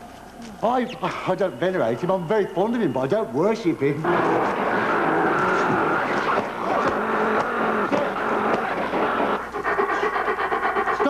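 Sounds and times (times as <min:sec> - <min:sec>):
rapid even pulses: 0:03.8 - 0:11.0.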